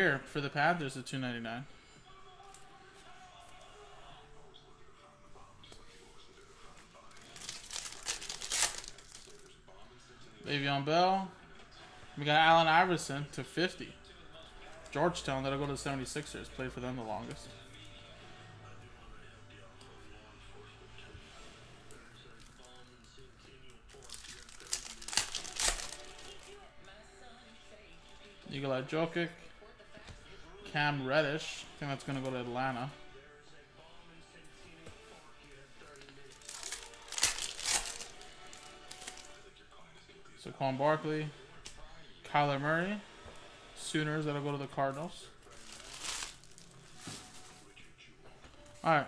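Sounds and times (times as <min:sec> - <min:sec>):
soft rustle of card packs: 0:00.1 - 0:10.6, 0:21.0 - 0:27.0, 0:33.8 - 0:39.6, 0:43.8 - 0:49.0
foil wrapper tearing and crinkling: 0:07.1 - 0:09.5, 0:23.9 - 0:26.5, 0:36.3 - 0:39.4, 0:45.5 - 0:47.4.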